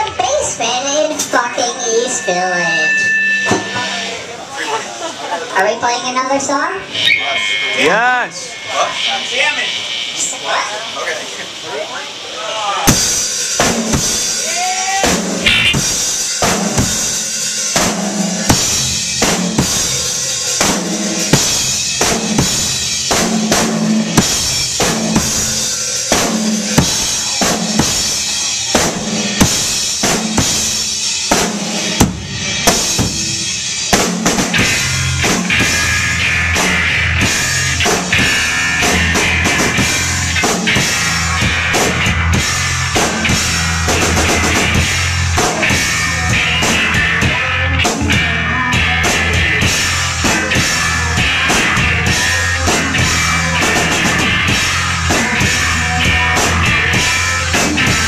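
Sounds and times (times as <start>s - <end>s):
distorted guitar: 0.0s - 58.0s
drum kit beat: 6.8s - 58.0s
bass notes: 15.2s - 17.2s, 34.2s - 58.0s.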